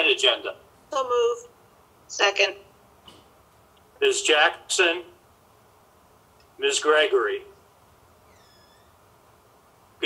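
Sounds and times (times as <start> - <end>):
faint room hiss: 0.0 - 10.0
faint high-pitched squeal: 8.2 - 9.0.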